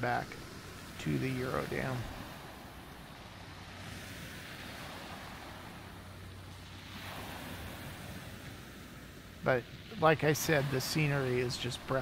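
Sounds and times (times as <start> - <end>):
light wind: 0.0 - 12.0
waves washing onto gravel beach: 0.0 - 12.0.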